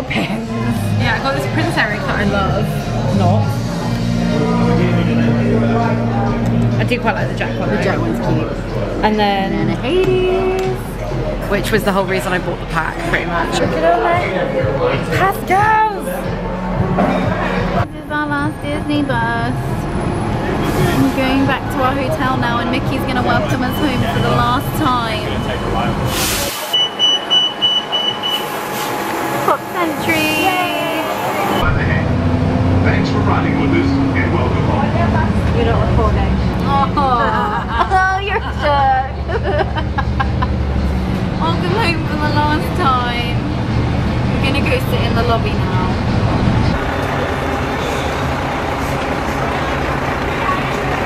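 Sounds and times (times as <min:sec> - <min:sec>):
bus engine running: 0:00.0 - 0:51.0
hum of traffic and people: 0:00.0 - 0:51.0
voices: 0:00.0 - 0:51.0
quick high warning beeps: 0:26.7 - 0:28.6.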